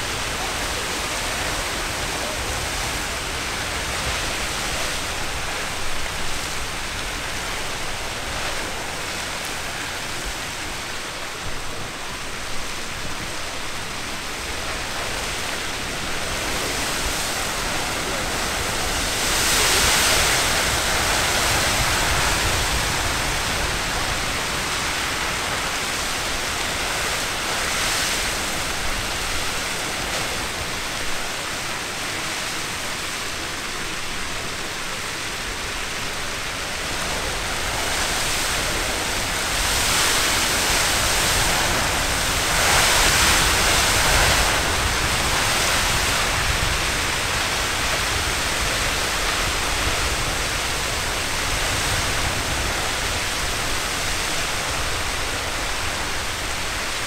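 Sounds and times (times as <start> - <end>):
geyser water and steam hissing: 0.0 - 57.0.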